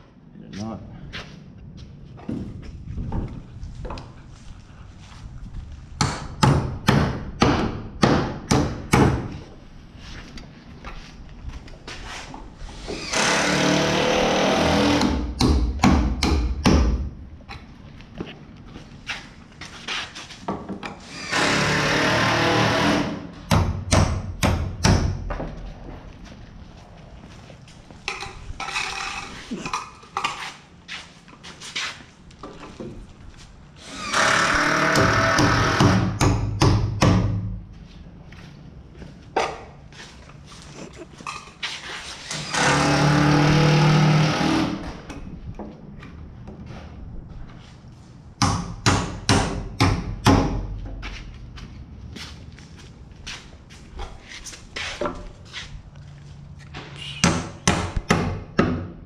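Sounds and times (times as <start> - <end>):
hammer nailing into wood: 6.0 - 9.3, 14.8 - 17.1, 21.3 - 25.3, 34.3 - 37.5, 48.4 - 50.7, 57.2 - 58.9.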